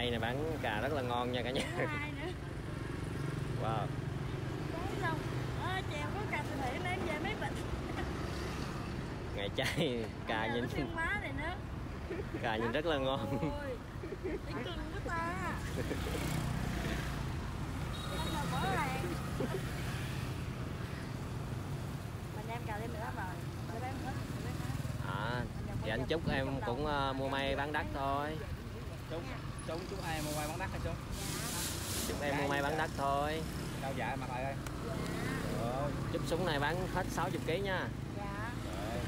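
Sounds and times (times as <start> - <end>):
motorbike traffic hum: 0.0 - 39.0.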